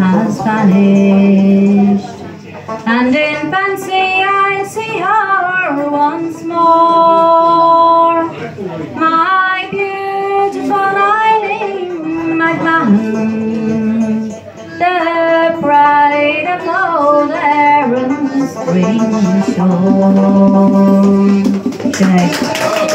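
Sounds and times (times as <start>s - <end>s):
woman singing a slow ballad: 9.0s - 21.6s.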